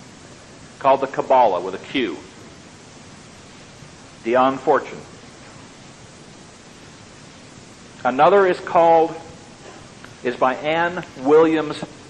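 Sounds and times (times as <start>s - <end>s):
steady background hiss: 0.0s - 12.0s
man speaking: 4.3s - 5.1s, 10.2s - 12.0s.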